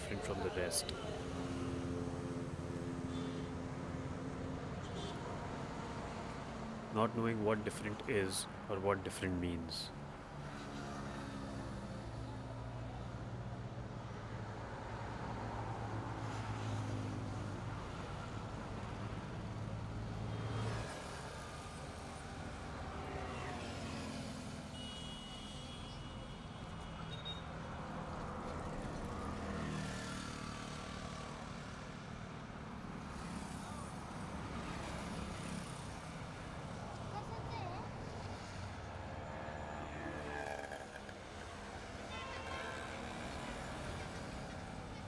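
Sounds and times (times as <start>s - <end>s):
highway traffic passing: 0.0s - 45.0s
auto-rickshaw passing: 28.5s - 45.0s.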